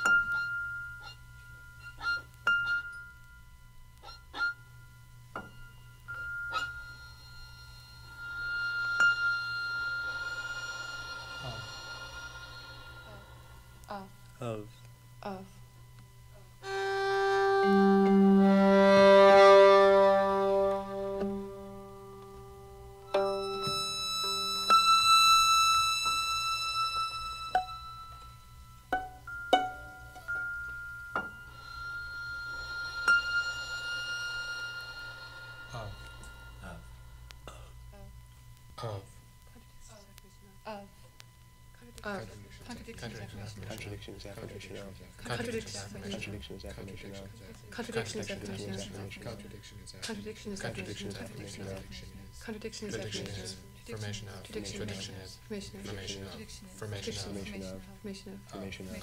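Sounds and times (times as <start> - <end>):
struck metal percussion ringing: 4.3 - 13.7, 23.1 - 37.7.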